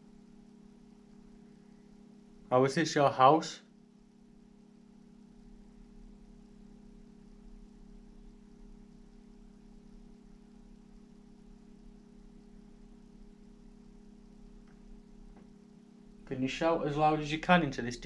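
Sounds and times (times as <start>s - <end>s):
low electrical hum: 0.0s - 18.0s.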